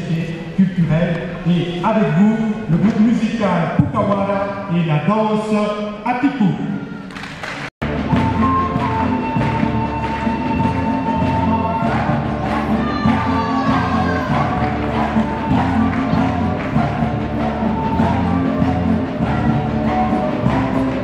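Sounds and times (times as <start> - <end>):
steady drum beat: 7.8 - 21.0
violins playing melody: 7.8 - 21.0.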